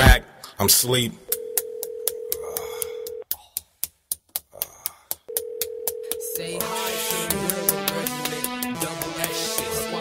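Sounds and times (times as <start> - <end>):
sharp even ticking: 1.2 - 9.4
steady telephone tone: 1.3 - 3.2, 5.3 - 6.4.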